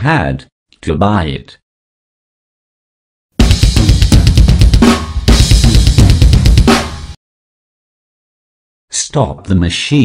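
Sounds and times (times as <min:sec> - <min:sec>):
drum kit played fast: 0:03.4 - 0:07.2.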